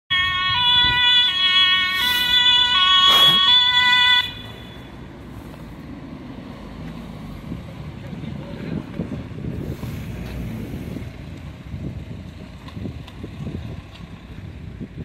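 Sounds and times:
two-tone emergency siren: 0.1s - 5.1s
road traffic: 0.1s - 15.0s
wind on microphone: 0.2s - 3.6s, 7.0s - 15.0s.

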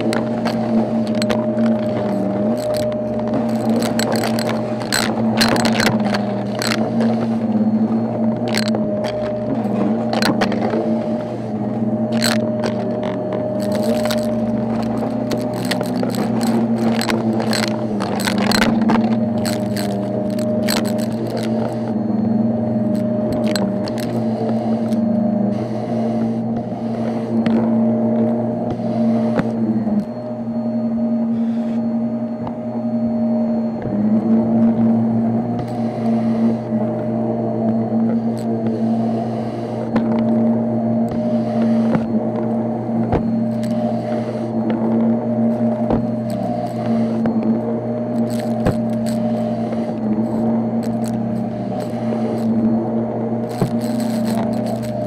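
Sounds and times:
debris rattling in vacuum: 0.0s - 22.0s
vacuum cleaner motor hum: 0.0s - 55.0s.

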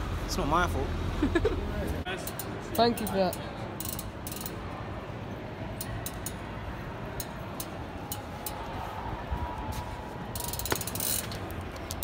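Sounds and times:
bicycle hub ratchet clicking: 2.1s - 4.8s, 5.8s - 8.7s, 10.3s - 12.0s.

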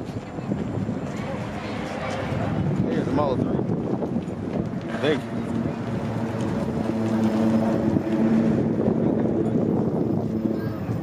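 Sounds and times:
background voices talking: 0.0s - 11.0s
low engine hum: 0.0s - 11.0s.

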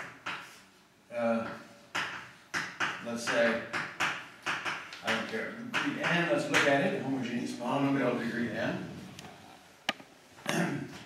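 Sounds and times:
chalk clicking on blackboard: 0.0s - 0.6s.

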